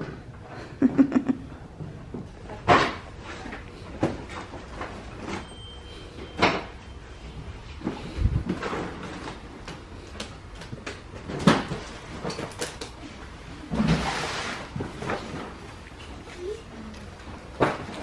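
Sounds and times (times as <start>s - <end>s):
objects knocking and clattering: 10.5s - 13.1s.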